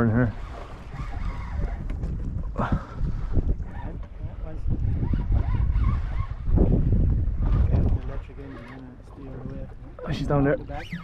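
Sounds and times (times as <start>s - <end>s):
choppy water around boat: 0.0s - 11.0s
wind buffeting microphone: 0.0s - 11.0s.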